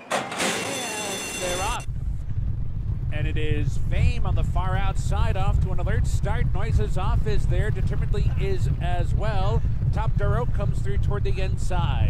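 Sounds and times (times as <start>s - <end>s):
start bell ringing: 0.0s - 1.9s
starting gate clanging: 0.0s - 1.9s
hooves rumbling on dirt: 1.8s - 12.0s.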